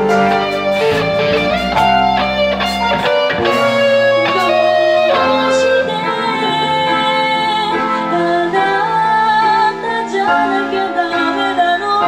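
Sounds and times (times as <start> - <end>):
drum and cymbal hits: 0.0 - 4.8
electric guitar: 0.0 - 12.0
keyboard: 0.0 - 12.0.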